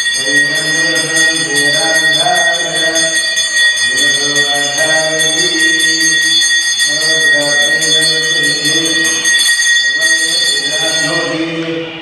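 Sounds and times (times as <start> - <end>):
temple bell ringing rapidly: 0.0 - 12.0
person chanting: 0.2 - 6.3, 6.9 - 9.4, 10.0 - 12.0.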